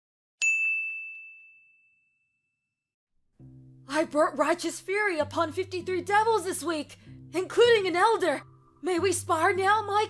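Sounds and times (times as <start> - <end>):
bright chime ding: 0.4 - 2.3.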